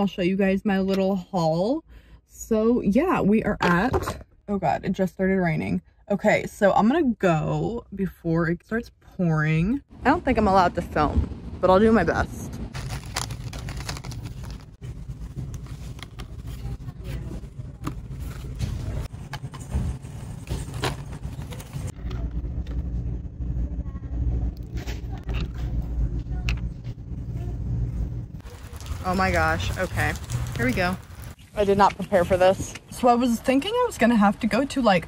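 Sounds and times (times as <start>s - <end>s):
store background rumble: 0.0s - 35.0s
plastic packaging rustling: 12.7s - 21.9s, 28.4s - 31.7s.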